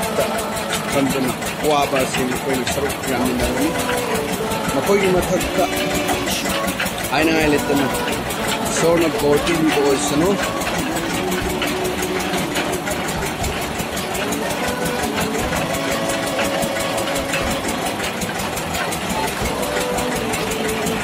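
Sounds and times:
drilling rig engine running: 0.0s - 21.0s.

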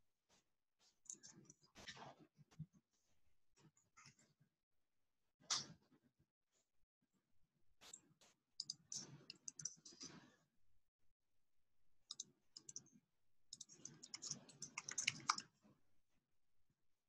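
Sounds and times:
computer keyboard typing: 13.5s - 15.5s.

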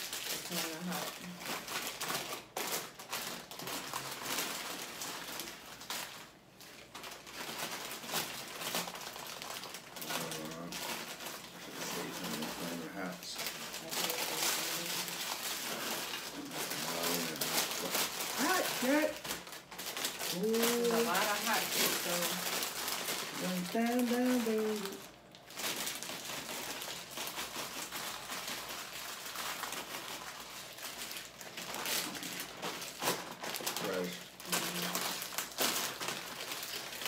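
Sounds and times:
plastic bags crinkling: 0.0s - 37.0s.

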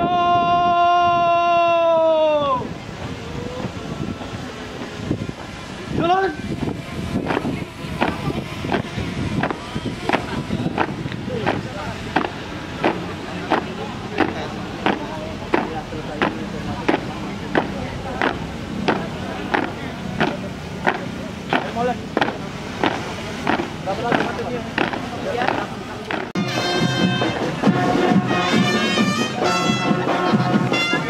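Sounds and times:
crowd chatter: 0.0s - 31.0s
marching cadence strikes: 7.3s - 29.9s.

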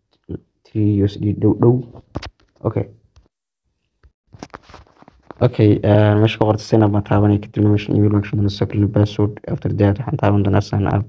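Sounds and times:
man talking: 0.2s - 2.0s, 2.6s - 3.0s, 5.4s - 11.0s.

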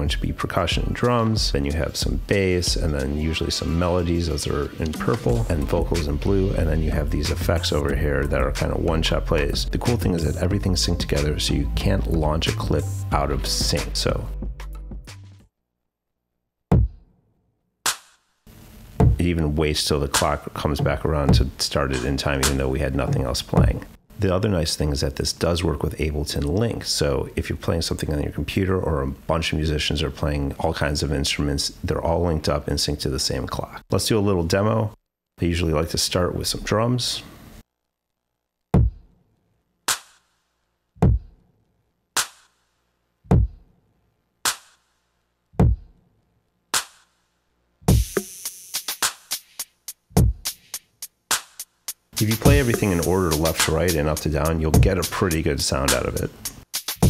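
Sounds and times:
deep kick drum: 16.7s - 17.0s, 19.0s - 19.2s, 23.1s - 23.8s, 38.8s - 39.1s, 41.0s - 41.4s, 43.3s - 43.6s, 45.6s - 45.9s, 50.2s - 50.4s, 52.4s - 52.8s, 54.8s - 55.0s
heavy electronic drum hits: 52.4s - 52.8s.

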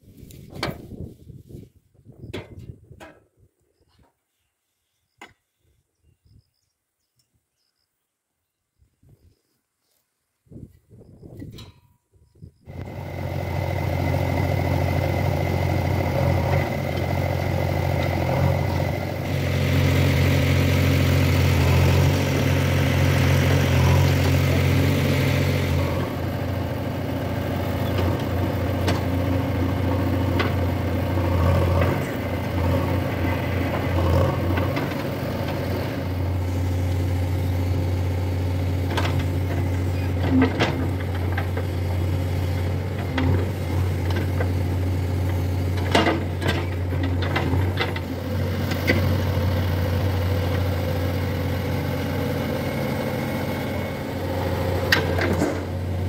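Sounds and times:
backhoe diesel engine under load: 12.6s - 56.0s
backhoe digging soil: 12.7s - 56.0s.

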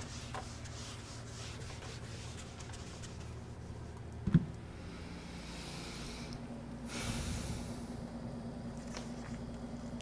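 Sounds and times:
eraser wiping whiteboard: 0.0s - 4.0s.

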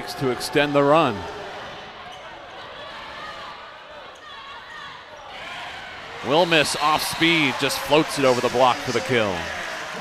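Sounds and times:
murmur of arena crowd: 0.0s - 10.0s.

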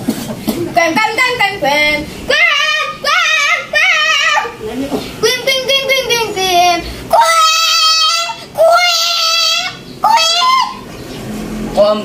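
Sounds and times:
high-pitched voice singing: 5.2s - 10.8s.

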